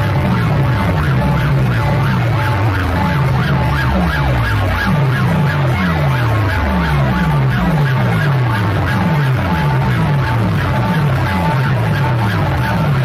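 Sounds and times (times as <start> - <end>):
bass drops: 0.0 - 13.0
siren-like wail: 0.0 - 13.0.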